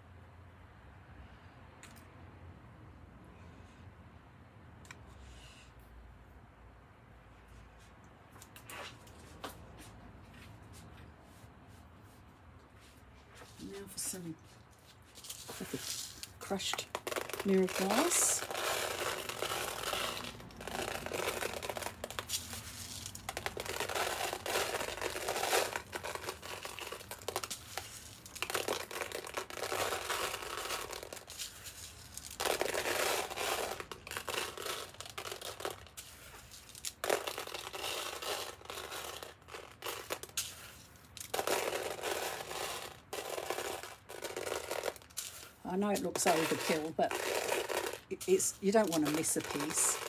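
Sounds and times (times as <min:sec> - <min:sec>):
glass chips rattling and scraping: 0:15.1 - 0:50.0.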